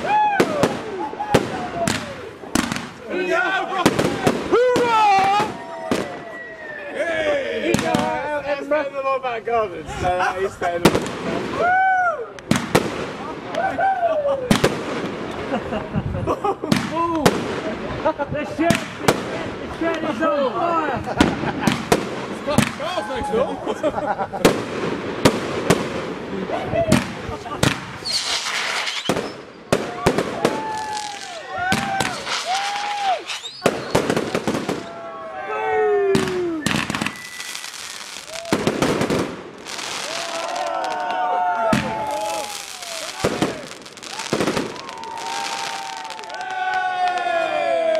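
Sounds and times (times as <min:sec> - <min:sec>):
fireworks bursting with bangs: 0:00.0 - 0:06.4, 0:07.6 - 0:08.3, 0:10.7 - 0:13.7, 0:14.5 - 0:20.2, 0:21.0 - 0:23.0, 0:24.2 - 0:35.1, 0:36.1 - 0:47.5.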